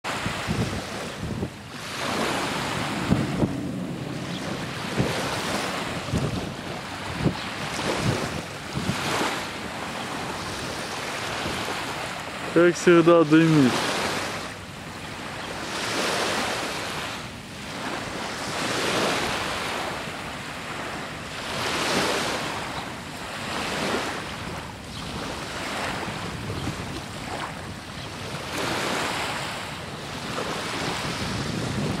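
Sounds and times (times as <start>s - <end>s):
small waves washing ashore: 0.0s - 32.0s
wind buffeting microphone: 0.1s - 32.0s.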